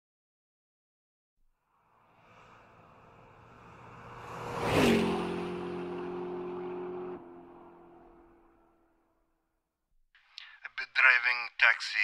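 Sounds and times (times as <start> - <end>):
car passing by fast: 1.7 - 9.2.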